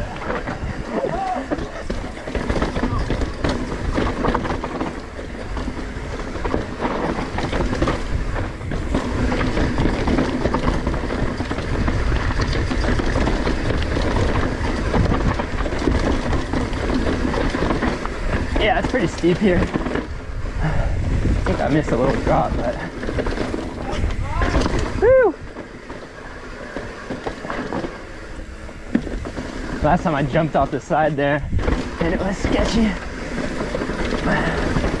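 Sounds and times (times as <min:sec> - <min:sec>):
bike frame rattling: 0:00.0 - 0:35.0
tyres crunching over dirt: 0:00.0 - 0:35.0.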